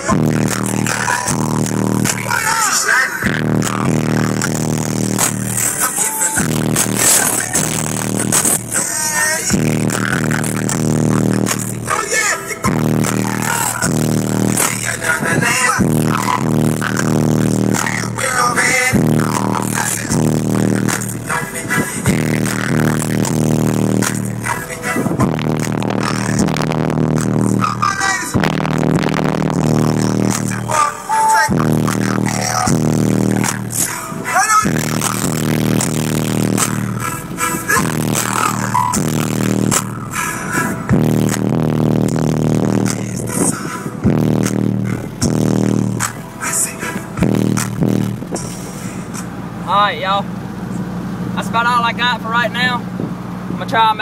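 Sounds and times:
loud music through subwoofers: 0.0s - 50.3s, 51.4s - 54.0s.

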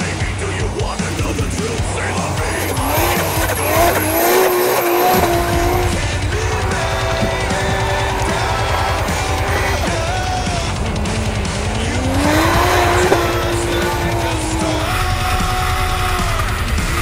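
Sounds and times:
car engine revving: 0.0s - 17.0s
heavy rock music: 0.0s - 17.0s.

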